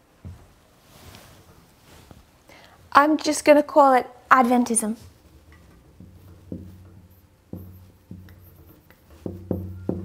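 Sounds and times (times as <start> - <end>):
marker tapping on whiteboard: 5.2 - 10.0
low ring from whiteboard: 5.4 - 10.0.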